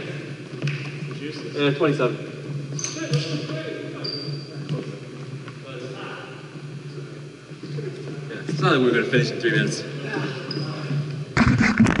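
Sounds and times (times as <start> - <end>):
faint voices in a gym: 0.0 - 11.8.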